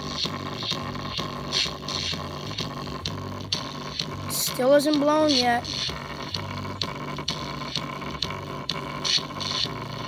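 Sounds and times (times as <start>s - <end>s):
overdriven speaker bass beat: 0.0s - 10.0s.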